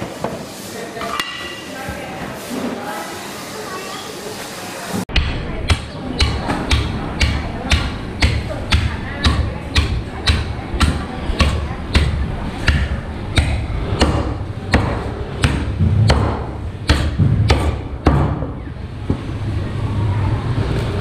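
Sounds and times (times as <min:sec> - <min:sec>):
cleaver chopping on wooden block: 0:05.2 - 0:18.4.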